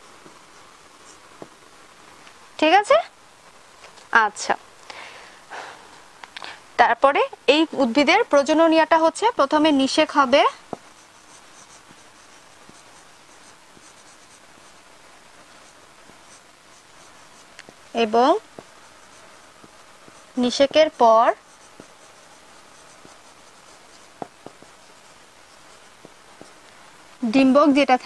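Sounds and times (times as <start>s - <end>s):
woman speaking: 2.6s - 3.1s, 4.1s - 4.6s, 6.8s - 10.6s, 17.9s - 18.5s, 20.4s - 21.4s, 27.2s - 28.0s
marker scratching on whiteboard: 8.5s - 26.6s.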